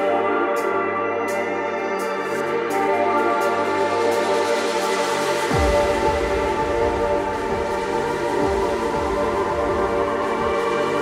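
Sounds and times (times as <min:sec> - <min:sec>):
kick drum: 0:05.5 - 0:11.0.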